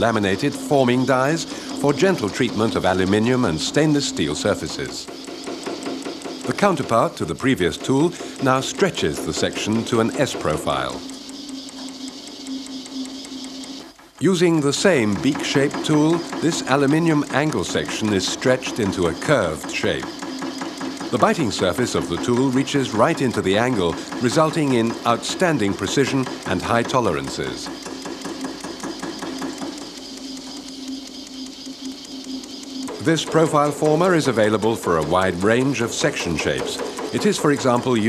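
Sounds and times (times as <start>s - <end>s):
rapid ticking of tool strokes: 0.0s - 38.0s
sheet-metal forming machine humming: 0.0s - 38.0s.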